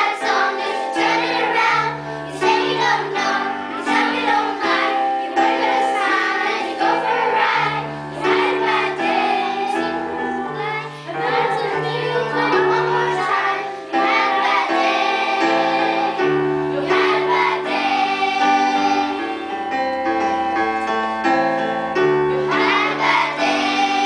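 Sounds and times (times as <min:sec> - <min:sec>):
children's choir singing: 0:00.0 - 0:20.1, 0:21.6 - 0:24.0
electric keyboard chords and bass: 0:05.5 - 0:24.0.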